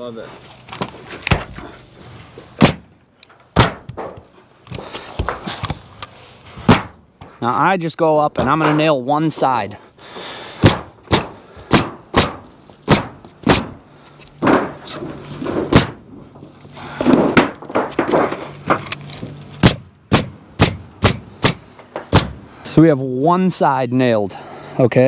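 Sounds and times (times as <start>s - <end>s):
pneumatic nailer firing into metal: 2.6s - 2.9s, 10.6s - 13.8s, 15.7s - 16.0s, 19.6s - 22.4s.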